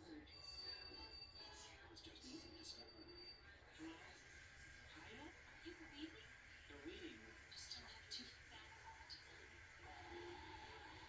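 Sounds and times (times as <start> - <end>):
faint tv soundtrack: 0.0 - 11.0
quiet music tones: 0.0 - 11.0.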